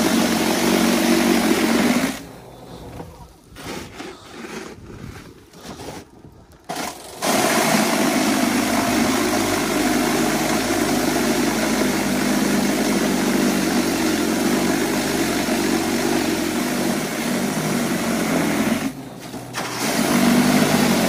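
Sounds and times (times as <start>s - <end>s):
electric power shovel running: 0.0s - 4.6s, 6.6s - 21.0s.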